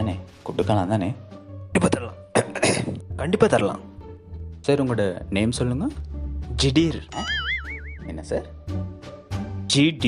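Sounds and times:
background music: 0.0 - 10.0
wobbling cartoon whistle tone: 7.2 - 8.1.

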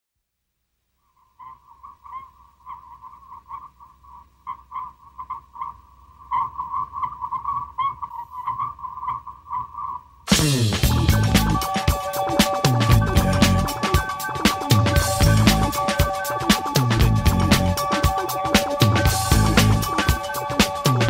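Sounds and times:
low hum: 10.3 - 11.8, 12.6 - 18.0
high electronic tone pulsing: 10.3 - 21.0.

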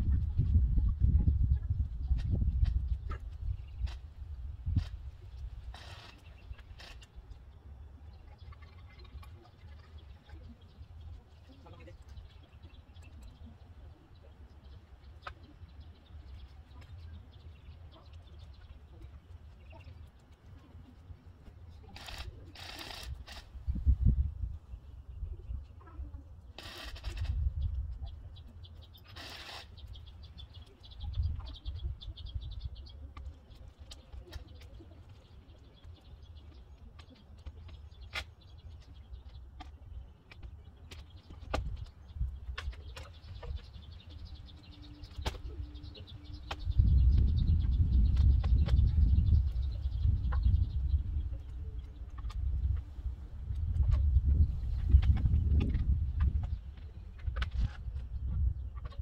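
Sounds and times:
faint birdsong: 0.0 - 59.0
wind rumble on microphone: 0.0 - 59.0.

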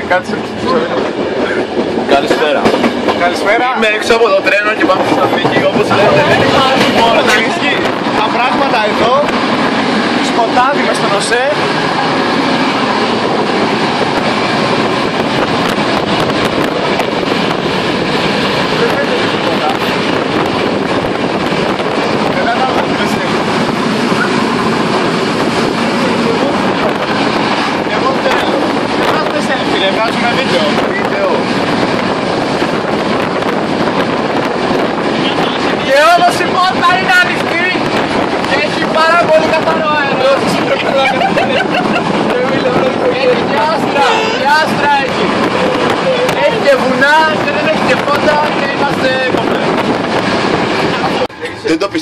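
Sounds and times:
wheels clacking over rail joints: 0.0 - 51.3
train running noise: 0.0 - 52.0.

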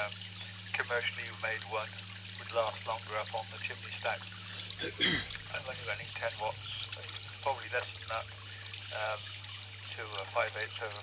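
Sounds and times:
person speaking: 4.6 - 6.1.

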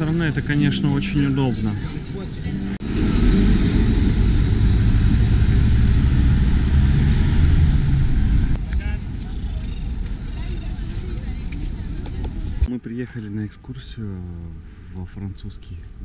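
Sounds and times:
tram rumbling past: 0.0 - 12.7
street ambience: 0.0 - 16.0.

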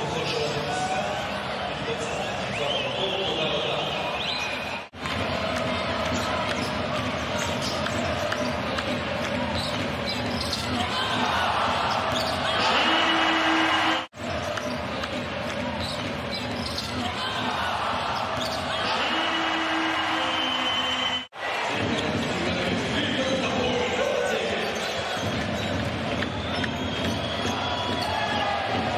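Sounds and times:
crowd noise and voices: 0.0 - 28.9.

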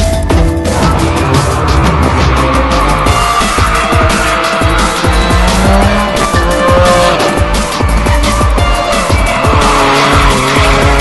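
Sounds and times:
music playing: 0.0 - 11.0
car engine running hard: 0.3 - 11.0
tyres squealing: 0.6 - 11.0.

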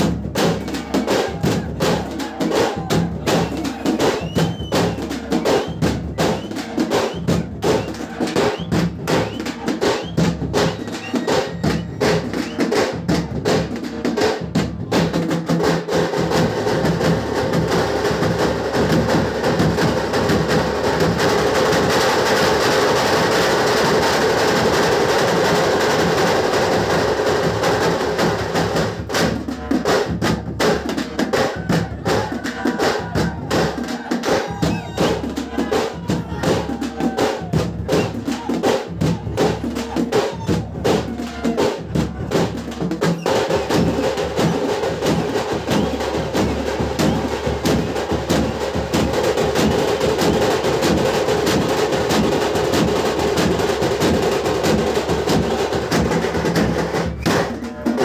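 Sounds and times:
fast loud drumming: 0.0 - 58.0.

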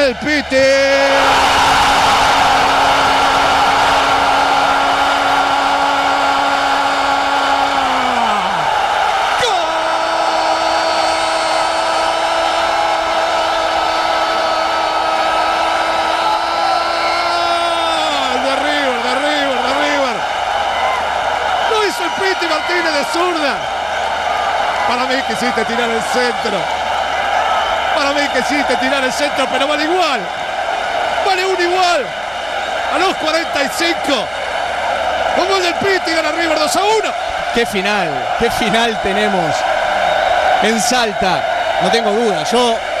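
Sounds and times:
stadium crowd cheering: 0.0 - 43.0.

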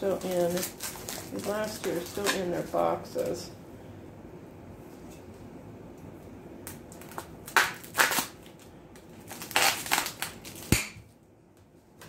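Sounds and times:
paper packing rustling: 0.0 - 3.4.

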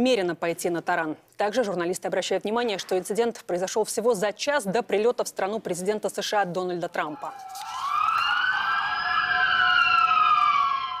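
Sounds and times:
emergency vehicle siren wailing: 7.1 - 11.0.

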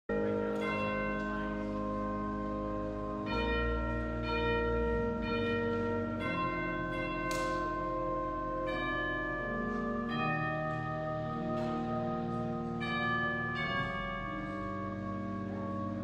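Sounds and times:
church bells ringing: 0.0 - 16.0.

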